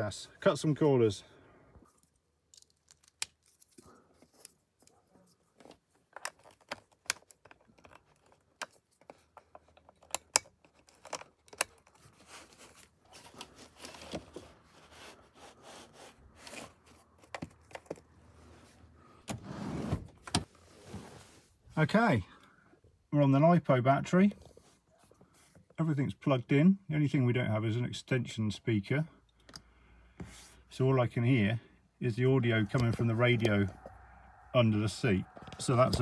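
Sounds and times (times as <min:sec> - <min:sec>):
connectors clicking and rattling: 0:01.9 - 0:12.2.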